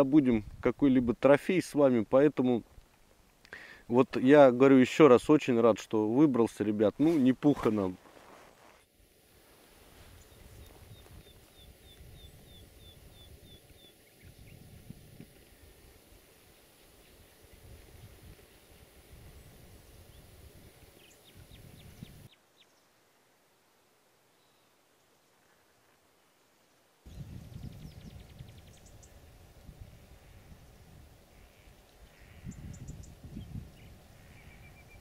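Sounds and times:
wind buffeting microphone: 10.2 - 16.3, 17.2 - 22.3, 27.1 - 35.0.

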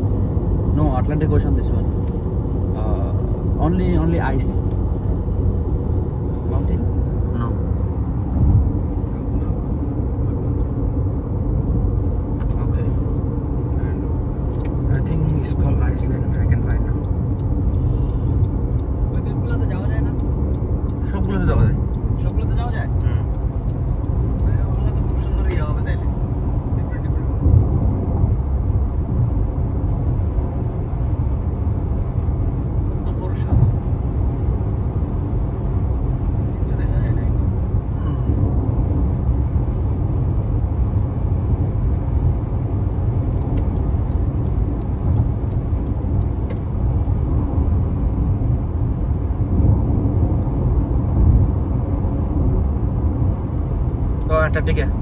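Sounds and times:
car cabin road noise: 0.0 - 55.0.

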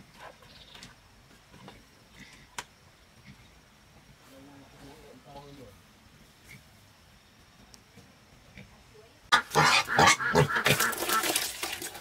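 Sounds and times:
pigs calling loudly: 9.3 - 11.6
mash ladled into bucket: 10.6 - 12.0.

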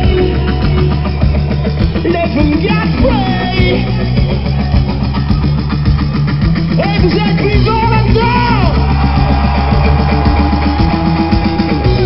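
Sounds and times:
rock band playing live: 0.0 - 12.0.

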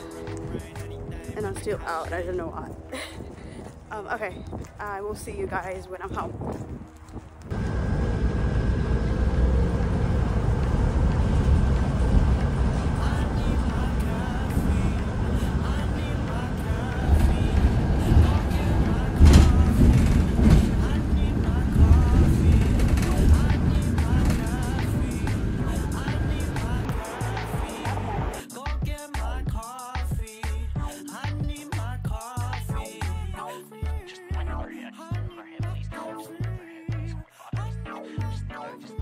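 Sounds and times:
bus engine and road rumble: 0.0 - 28.4.

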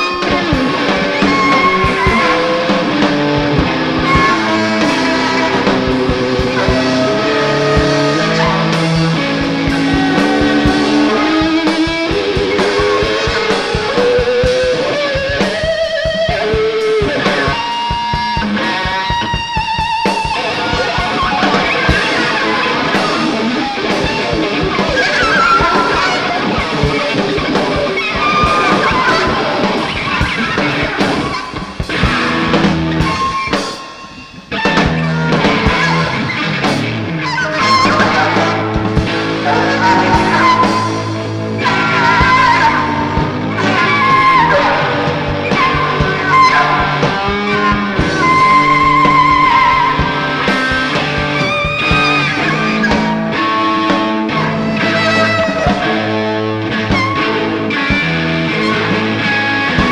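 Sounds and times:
busy drum kit: 0.0 - 59.9
electric guitar: 0.0 - 59.9
lead guitar line sliding upward: 0.0 - 59.9.

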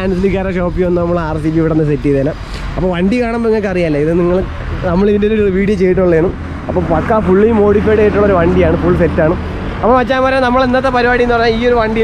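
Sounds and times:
low rumble: 0.0 - 12.0
man talking: 0.0 - 12.0.

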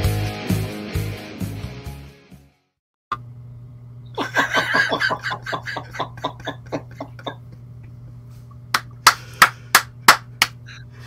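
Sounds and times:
man laughing: 4.2 - 7.6
sharp hand claps: 8.7 - 10.6.

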